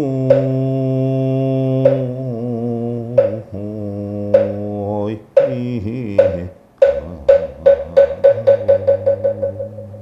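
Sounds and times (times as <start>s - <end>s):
wooden fish knocking roll: 6.2s - 10.0s.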